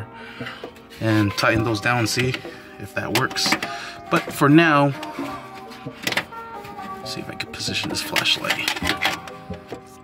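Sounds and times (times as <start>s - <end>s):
background music held notes: 0.0s - 10.0s.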